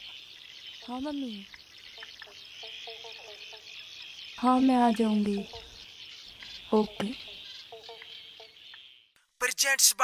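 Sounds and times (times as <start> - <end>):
insects chirring: 0.0 - 9.1.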